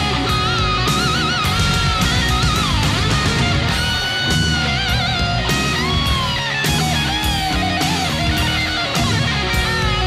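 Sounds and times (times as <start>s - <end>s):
electric guitar solo: 0.0s - 10.0s
hard rock band: 0.0s - 10.0s.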